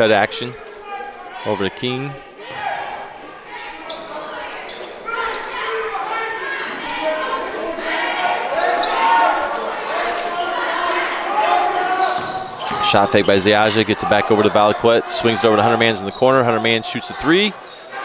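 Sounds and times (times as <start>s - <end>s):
crowd chatter: 0.0s - 18.0s
voices shouting: 0.0s - 18.0s.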